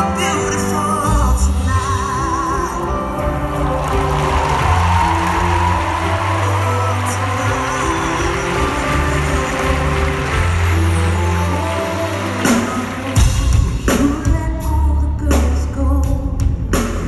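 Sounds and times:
distant live band ballad: 0.0 - 17.0.

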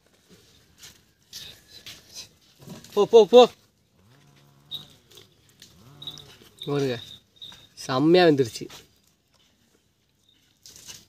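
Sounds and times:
people talking: 3.0 - 3.6, 6.6 - 7.1, 7.8 - 8.8
faint drawn-out call: 4.0 - 7.8.

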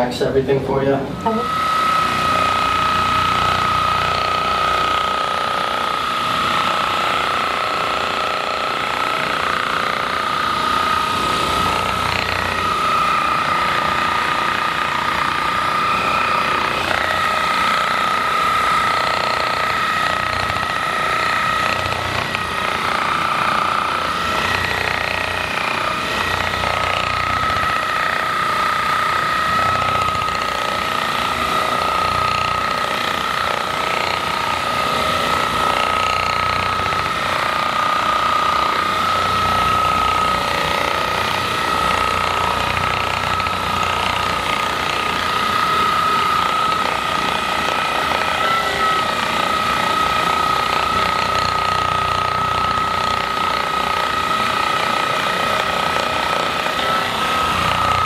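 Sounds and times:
massage gun motor whine: 0.0 - 58.0.

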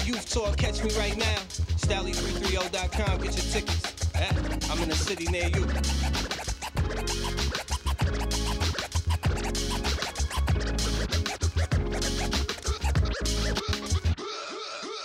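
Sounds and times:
hip hop beat with heavy bass: 0.0 - 14.2
record scratching: 0.0 - 14.2.

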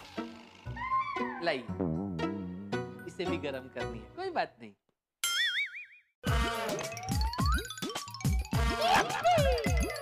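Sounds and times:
playful background music: 0.0 - 4.5, 6.2 - 10.0.

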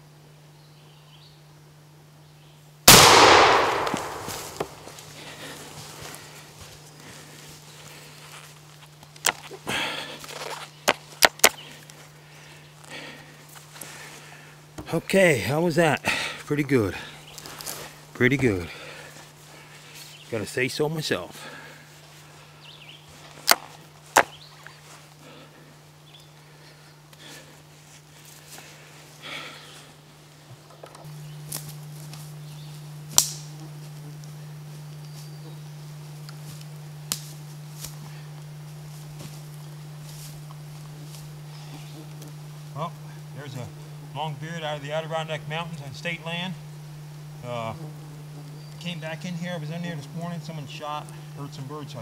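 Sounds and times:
steady low hum: 0.0 - 52.0
sharp snaps: 2.9 - 5.1, 33.1 - 33.5, 37.1 - 38.0
rustling in dry leaves: 3.6 - 14.4, 21.4 - 30.0, 31.1 - 44.1.

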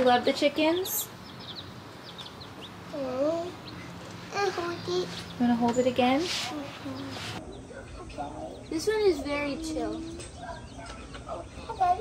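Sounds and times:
baby chicks peeping: 0.0 - 12.0.

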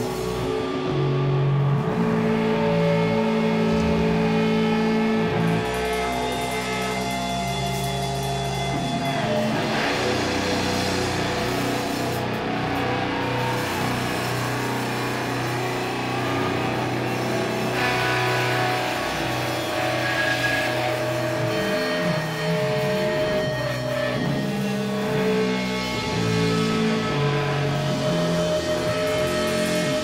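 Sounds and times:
doom metal band playing: 0.0 - 30.0.

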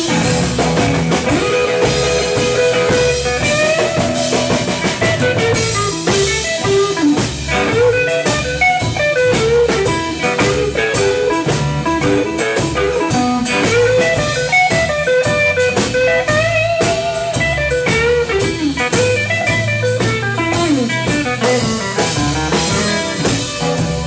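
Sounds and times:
blues band playing: 0.0 - 24.0
harmonica lead: 0.0 - 24.0.

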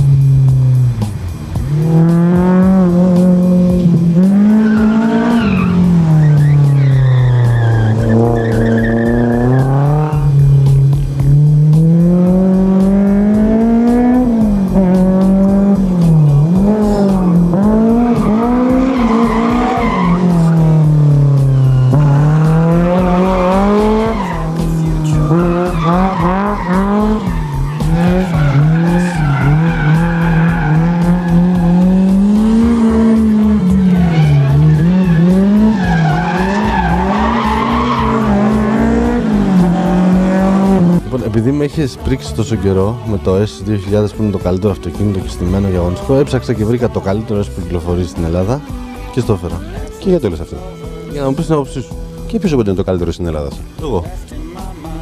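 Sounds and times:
car engine revving: 0.0 - 53.9
background music with beat: 0.0 - 55.0
tyre squeal: 4.3 - 10.4, 17.0 - 20.8, 21.5 - 32.6, 33.2 - 40.5.

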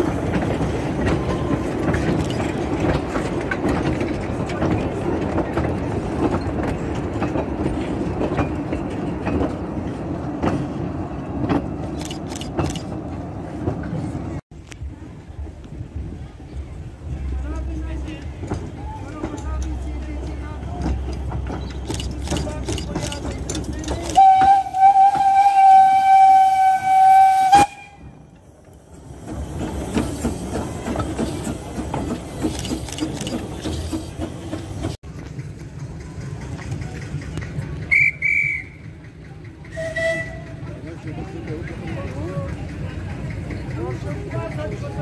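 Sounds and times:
locomotive rumble: 0.0 - 45.0
steam locomotive whistle blast: 24.1 - 28.2, 37.9 - 38.9, 39.7 - 40.6
short high whistle toots: 37.9 - 38.9.

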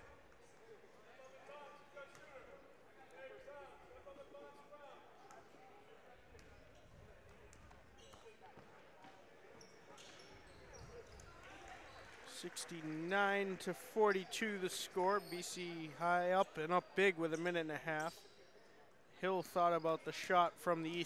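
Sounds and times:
faint crowd chatter: 0.0 - 21.0.

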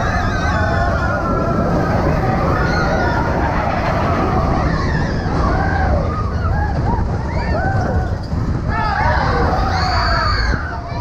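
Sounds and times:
riders yelling and whooping: 0.0 - 11.0
roller coaster rumbling on track: 0.0 - 11.0.

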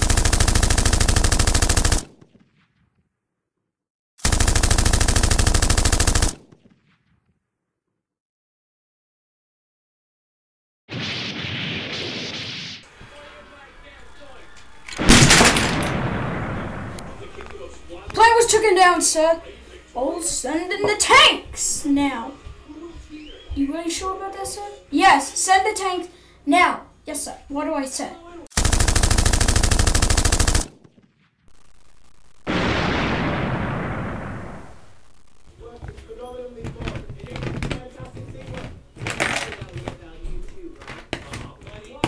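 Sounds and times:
machine-gun fire: 0.0 - 2.8, 4.2 - 7.1, 15.0 - 17.6, 28.5 - 35.4
loud explosion bang: 10.9 - 12.8, 15.0 - 17.2, 32.5 - 34.8.

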